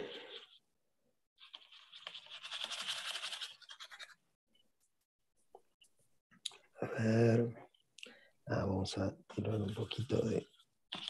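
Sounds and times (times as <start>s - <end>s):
paintbrush scrubbing on canvas: 1.4s - 4.3s, 9.4s - 11.0s.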